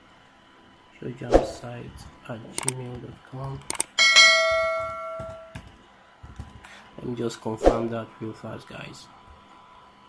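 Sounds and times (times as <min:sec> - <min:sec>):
notification bell ding: 0:04.0 - 0:05.6.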